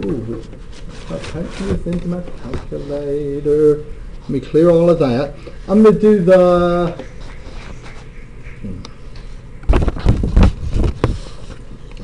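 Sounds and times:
paper rustling: 0.4s - 3.1s.

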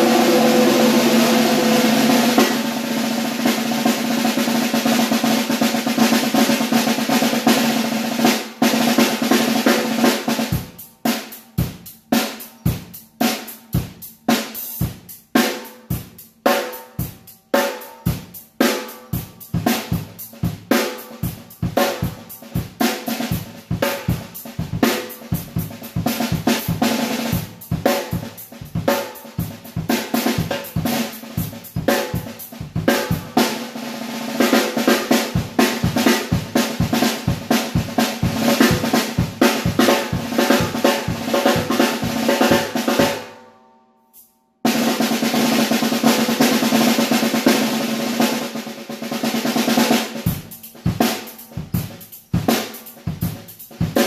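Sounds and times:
snare drum played with sticks: 0.0s - 43.4s, 44.2s - 54.0s.

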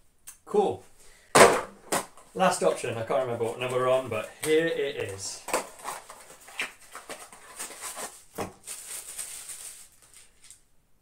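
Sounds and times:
thump: 1.3s - 2.1s
cardboard box rustling: 3.4s - 10.2s.

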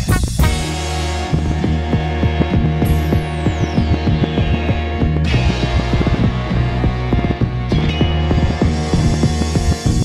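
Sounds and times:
instrumental hip-hop beat: 0.0s - 10.0s.

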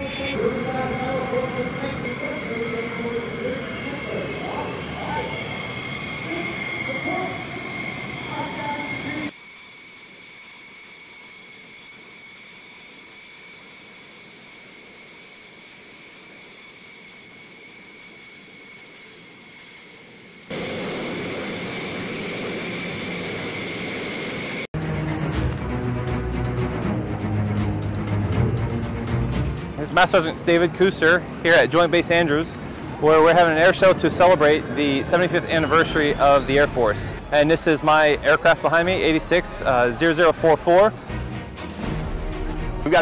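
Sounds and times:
jet engines idling whine: 0.0s - 43.0s.

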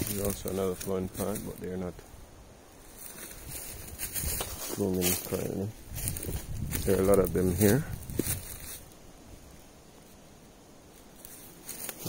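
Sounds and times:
faint rustling: 0.0s - 12.0s.

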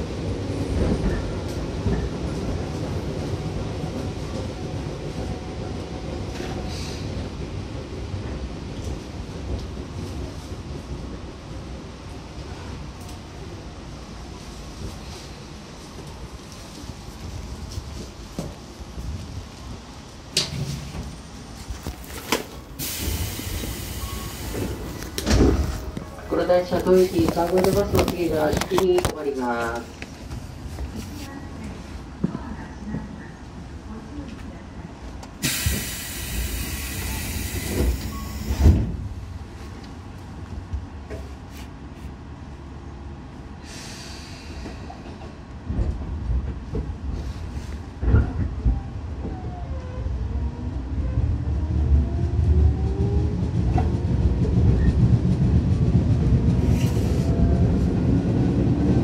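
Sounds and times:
train wheels rumbling on rail: 0.0s - 59.0s
compressed air hissing: 22.8s - 24.8s, 35.4s - 38.6s.

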